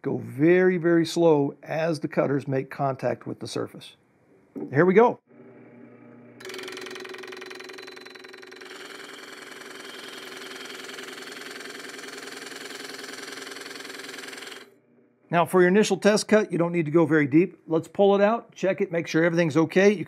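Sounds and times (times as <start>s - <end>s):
drill press cutting plywood: 5.8s - 14.7s.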